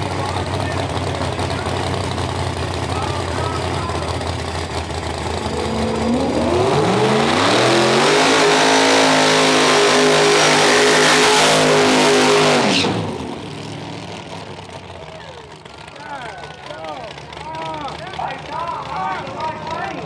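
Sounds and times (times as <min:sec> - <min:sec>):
car engine revving: 0:00.0 - 0:14.8
tires spinning: 0:00.0 - 0:14.9.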